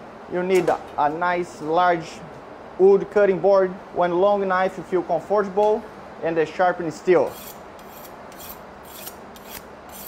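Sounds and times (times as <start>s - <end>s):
knife scraping on honing rod: 7.3s - 10.0s.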